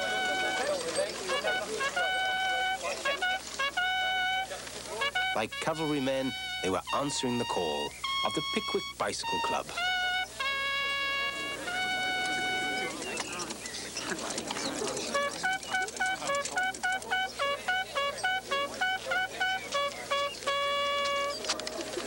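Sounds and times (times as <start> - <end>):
bugle playing: 0.0 - 22.0.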